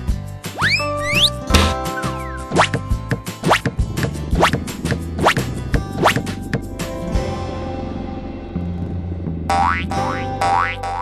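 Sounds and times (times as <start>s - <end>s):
children's music: 0.0s - 5.4s
cartoon boing rising in pitch: 9.5s - 11.0s.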